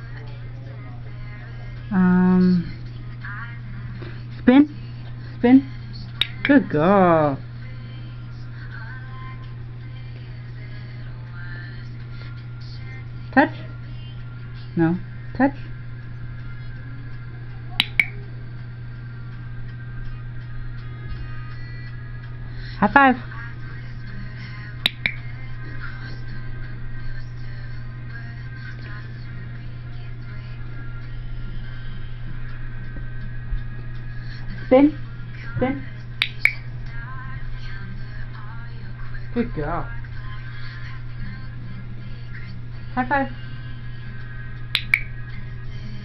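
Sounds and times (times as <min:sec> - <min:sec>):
clicker clicks: 0:17.8 - 0:18.2, 0:24.9 - 0:25.2, 0:44.8 - 0:45.1.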